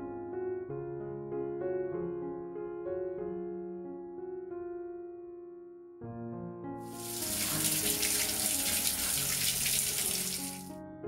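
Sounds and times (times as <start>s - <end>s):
kitchen tap running into sink: 6.9s - 10.7s
water splashing over vegetables: 6.9s - 10.7s.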